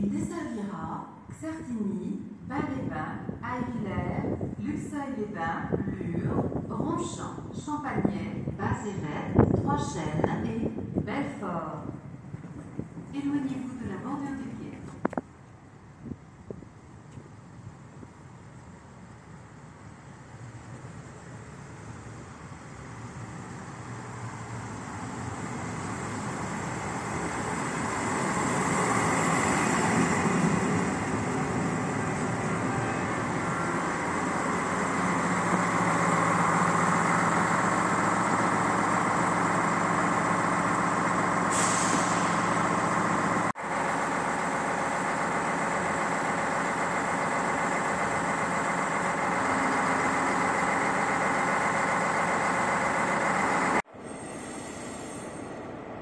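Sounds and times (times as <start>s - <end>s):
diesel railcar engine running: 2.4s - 56.0s
hiss of air brakes: 41.3s - 43.2s, 52.6s - 55.6s.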